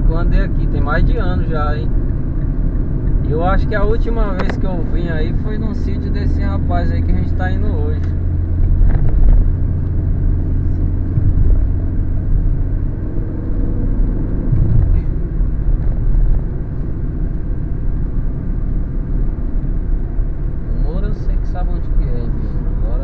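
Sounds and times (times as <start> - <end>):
car engine and tyre rumble: 0.0 - 23.0.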